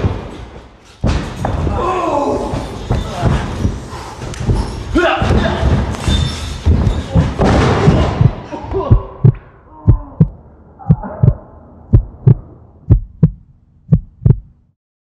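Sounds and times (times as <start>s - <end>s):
heartbeat thumps: 2.9s - 6.0s, 6.7s - 14.6s.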